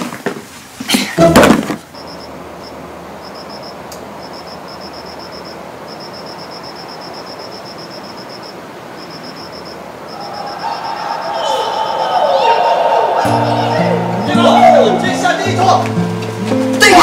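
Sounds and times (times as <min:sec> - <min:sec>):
night ambience hiss: 0:00.0 - 0:17.0
cricket chirping: 0:01.9 - 0:13.6
music: 0:13.2 - 0:17.0.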